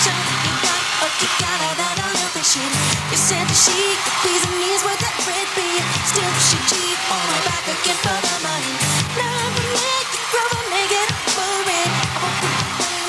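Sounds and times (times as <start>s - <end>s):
live pop music with heavy bass: 0.0s - 13.0s.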